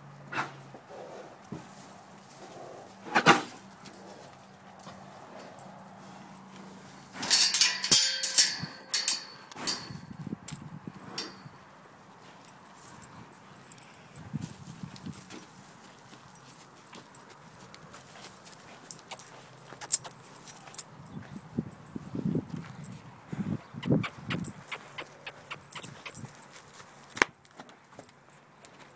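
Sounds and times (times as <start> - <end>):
horse blowing and sniffing: 0.3 - 1.7, 23.7 - 26.3
horse hooves on dirt: 0.4 - 28.9.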